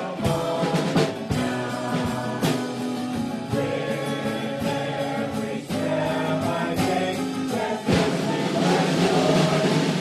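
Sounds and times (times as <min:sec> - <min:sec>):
congregation singing with band: 0:00.0 - 0:10.0.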